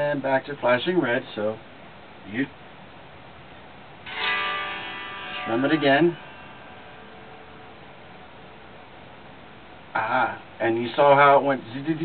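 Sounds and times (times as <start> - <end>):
faint electrical hum: 0.0 - 12.0
electric guitar strings ringing: 4.0 - 9.9.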